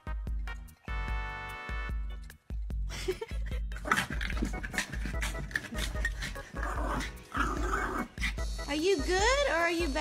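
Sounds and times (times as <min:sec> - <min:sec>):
small dog growling: 0:03.8 - 0:08.4.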